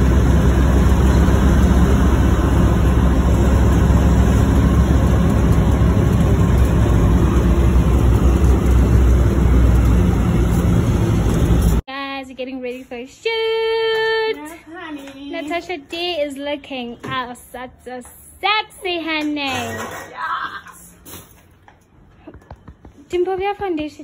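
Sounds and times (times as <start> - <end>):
car road and wind rumble: 0.0 - 11.8.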